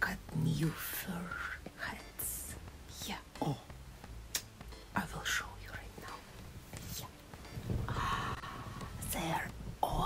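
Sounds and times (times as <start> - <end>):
woman whispering: 1.1 - 3.7, 5.0 - 6.2, 6.8 - 7.1, 9.0 - 10.0.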